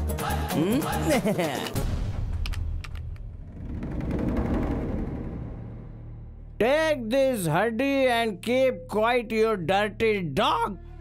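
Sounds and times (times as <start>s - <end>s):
low rumble: 3.1s - 6.6s.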